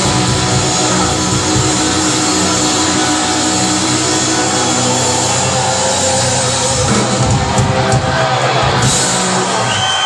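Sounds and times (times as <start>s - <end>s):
electric guitar: 0.0s - 10.0s
hard rock band playing live: 0.0s - 10.0s.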